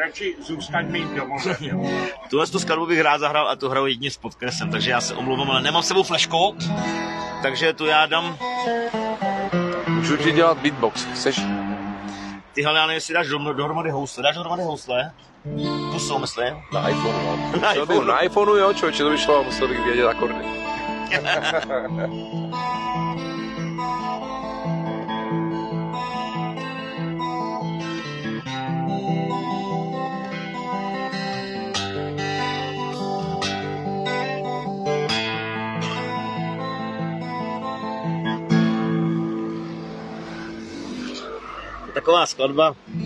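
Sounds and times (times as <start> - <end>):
acoustic guitar picking: 0.1 - 3.3, 4.4 - 12.6, 15.1 - 41.8, 42.7 - 43.0.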